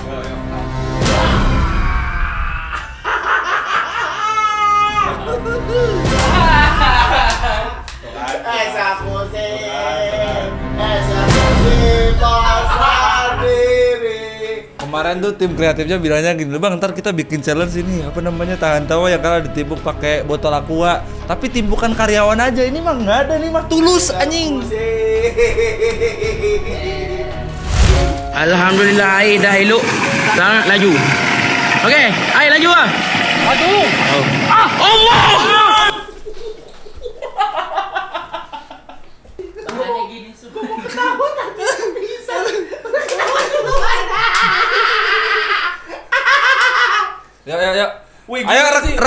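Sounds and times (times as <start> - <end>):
men laughing: 1.9 - 8.3, 12.2 - 13.7, 24.2 - 27.6, 33.9 - 47.4
high-pitched held laugh: 2.5 - 5.1, 25.1 - 27.2, 40.7 - 47.2.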